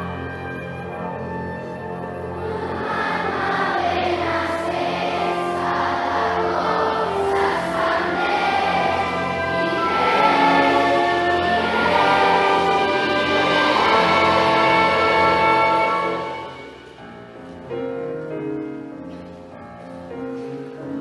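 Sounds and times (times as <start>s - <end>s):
instrumental accompaniment: 0.0s - 21.0s
children's choir singing: 2.2s - 17.0s.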